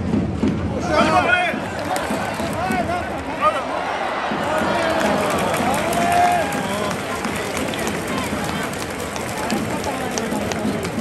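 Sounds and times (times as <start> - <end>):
crowd murmur: 0.6 - 11.0
sharp claps: 1.5 - 3.3, 4.3 - 11.0.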